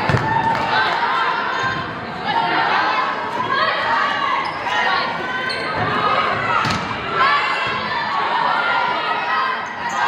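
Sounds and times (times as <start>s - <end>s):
people shouting and calling out: 0.0s - 10.0s.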